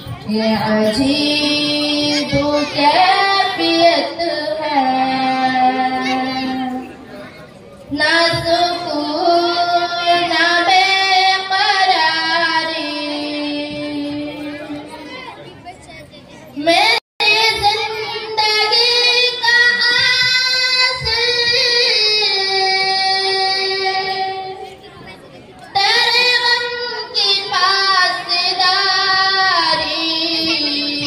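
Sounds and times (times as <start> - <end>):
girl singing unaccompanied: 0.0 - 7.0, 7.9 - 15.2, 16.6 - 31.0.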